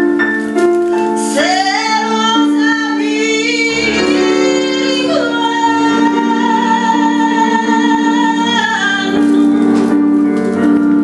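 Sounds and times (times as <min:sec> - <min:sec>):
woman singing slow melody: 0:01.3 - 0:09.6.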